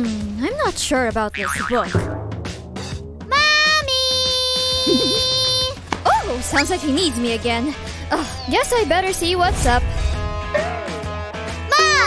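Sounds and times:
child calling out: 3.3 - 6.3, 11.7 - 12.0.

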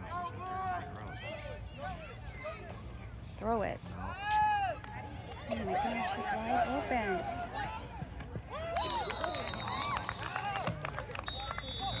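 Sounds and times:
spectators shouting and cheering: 4.2 - 12.0
referee's whistle blasts: 8.8 - 10.4, 11.2 - 12.0.

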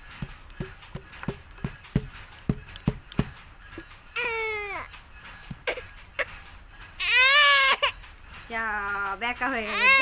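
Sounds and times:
toddler crying: 4.2 - 4.9, 7.0 - 8.0, 9.6 - 10.0.

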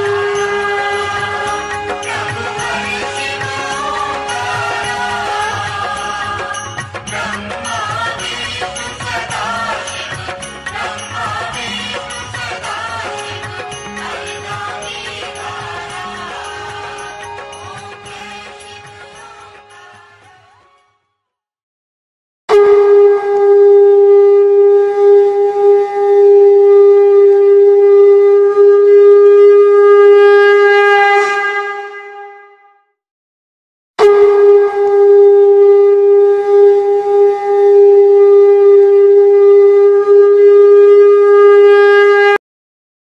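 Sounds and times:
conch shell blasts: 0.0 - 6.7, 22.5 - 32.6, 34.0 - 42.4.

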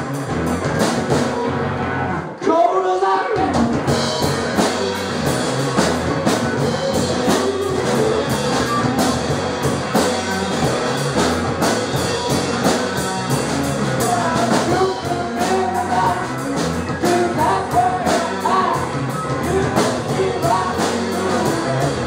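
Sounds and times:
drum kit beat: 0.0 - 1.6, 3.4 - 22.0
electric guitars: 0.0 - 2.4, 3.2 - 22.0
person singing: 6.5 - 9.1, 13.9 - 22.0.

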